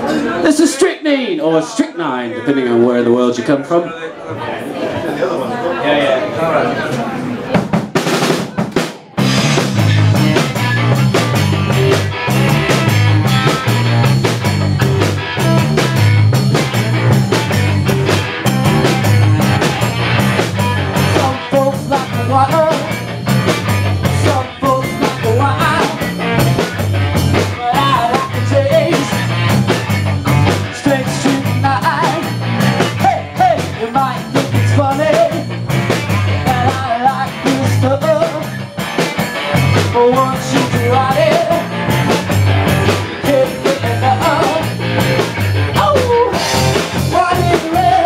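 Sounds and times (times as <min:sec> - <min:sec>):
drum kit fill: 0:07.5 - 0:48.0
garage rock song: 0:07.6 - 0:48.0.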